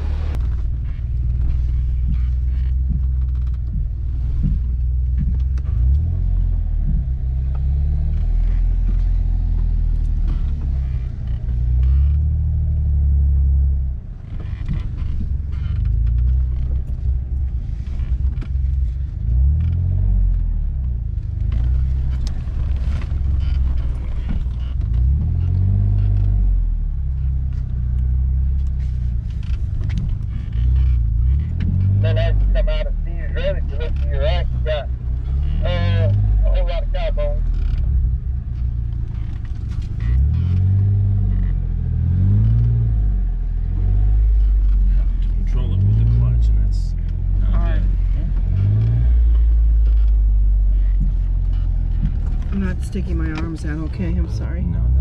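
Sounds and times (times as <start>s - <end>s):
car engine at low speed: 0.0s - 55.0s
body knocks and rattles: 0.3s - 12.7s, 13.4s - 26.4s, 27.0s - 32.3s, 37.4s - 42.9s, 47.0s - 55.0s.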